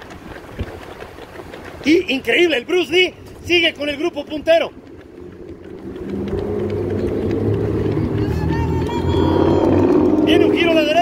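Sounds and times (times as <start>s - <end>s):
vehicle engine running: 3.6s - 11.0s.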